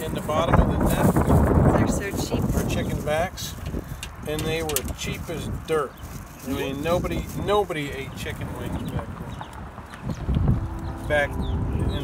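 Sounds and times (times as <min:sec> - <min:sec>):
person talking: 0:06.4 - 0:07.0
steady low rumble: 0:10.1 - 0:12.0.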